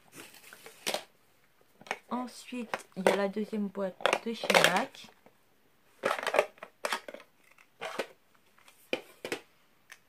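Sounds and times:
cardboard and paper rustling: 0.0 - 1.1.

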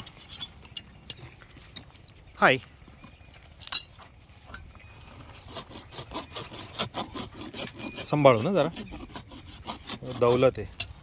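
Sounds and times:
rasp filing hoof: 5.0 - 11.0.

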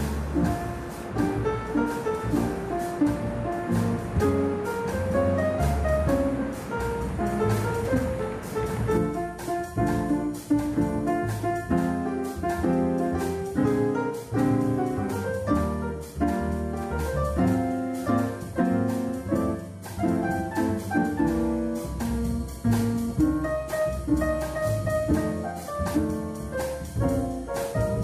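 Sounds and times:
bossa nova piano music: 0.0 - 28.0.

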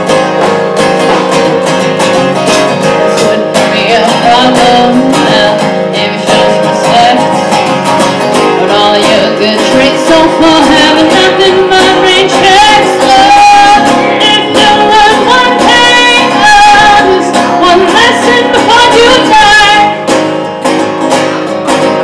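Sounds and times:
acoustic guitar strumming: 0.0 - 22.0
woman singing: 2.8 - 7.4, 8.4 - 20.1.

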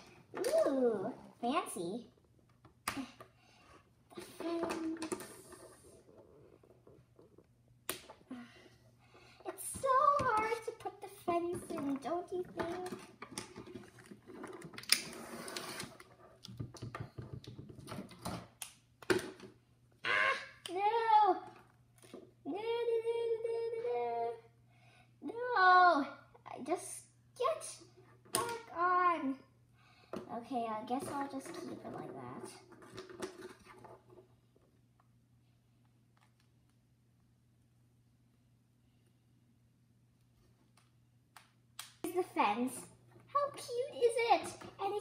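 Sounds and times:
child making wordless sounds: 0.4 - 2.1, 4.2 - 5.7, 9.4 - 13.0, 20.1 - 21.5, 22.5 - 24.6, 25.2 - 29.5, 42.1 - 45.0
plastic toy pieces tapping and rustling: 9.6 - 15.2.

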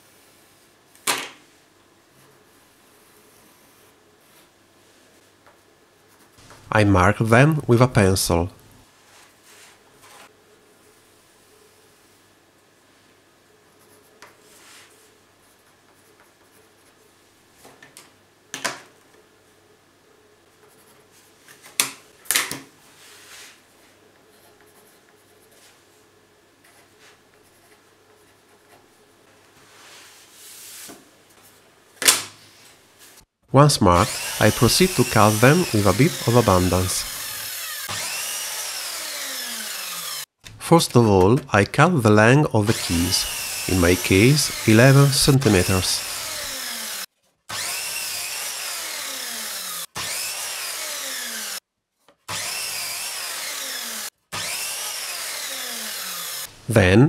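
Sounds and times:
electric miter saw cutting wood: 33.9 - 40.3, 42.6 - 51.6, 52.3 - 56.6.

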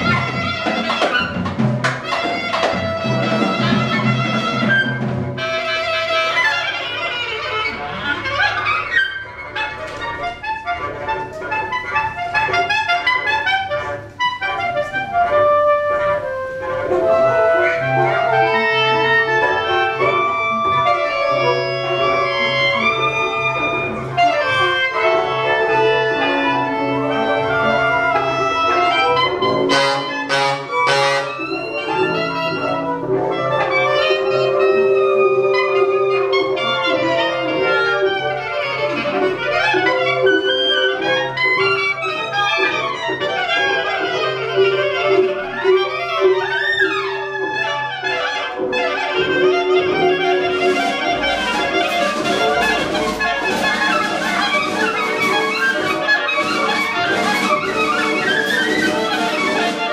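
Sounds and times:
jazz ensemble horns and reeds: 0.0 - 59.9.

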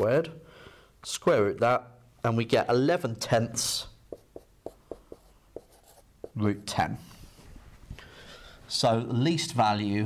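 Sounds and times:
marker pen writing on whiteboard: 4.1 - 6.8.

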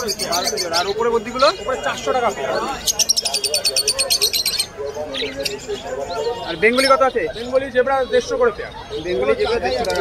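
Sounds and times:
caged birds chirping: 0.0 - 10.0
faint background voices: 0.0 - 10.0.

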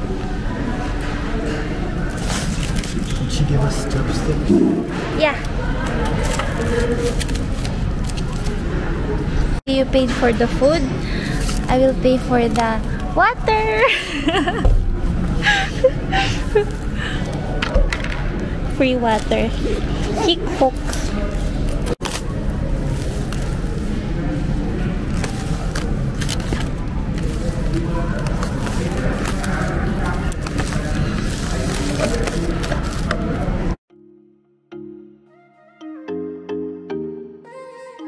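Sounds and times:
room noise: 0.0 - 33.8
plastic containers clicking and crinkling: 25.1 - 33.4.

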